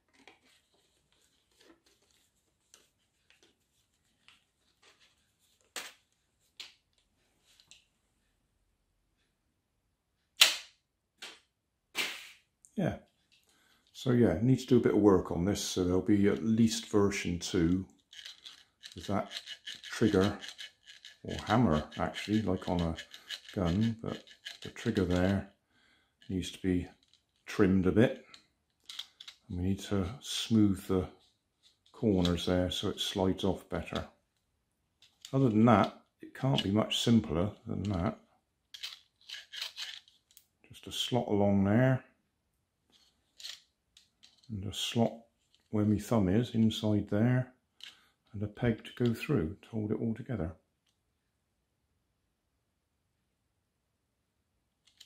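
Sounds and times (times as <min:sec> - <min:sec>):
plastic parts scraping: 0:00.0 - 0:06.0, 0:16.2 - 0:25.6, 0:26.2 - 0:29.5, 0:35.0 - 0:40.4, 0:42.9 - 0:44.5, 0:47.8 - 0:48.1
rubber band snapping: 0:10.4 - 0:11.4, 0:12.0 - 0:12.4.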